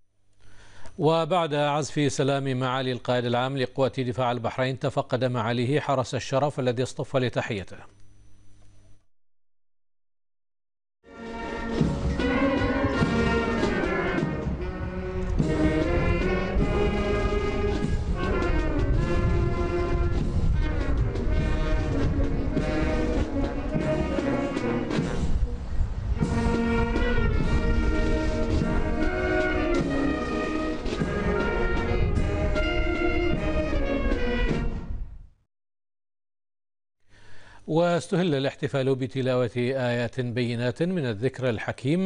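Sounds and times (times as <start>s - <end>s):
military brass band playing: 11.1s - 35.0s.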